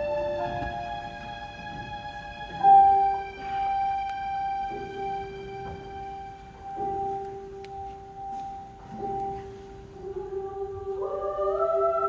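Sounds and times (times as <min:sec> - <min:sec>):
choir singing held notes: 0:09.1 - 0:12.0.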